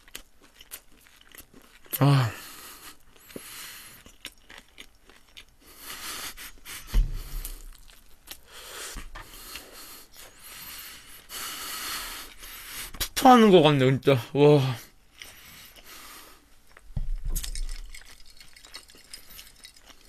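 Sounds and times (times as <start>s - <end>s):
toast being chewed: 0.0s - 13.1s, 15.1s - 20.0s
dull thump: 6.8s - 7.9s, 17.0s - 17.5s.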